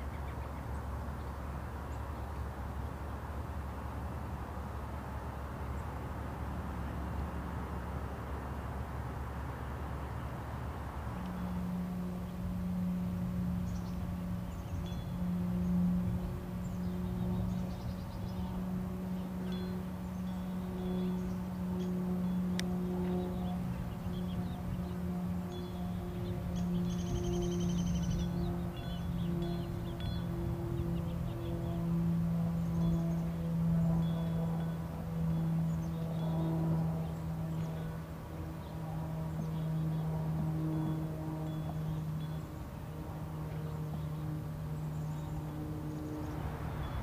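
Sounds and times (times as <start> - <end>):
low-pitched hum: 0.0 - 47.0
bird chirps and trill: 25.5 - 31.8.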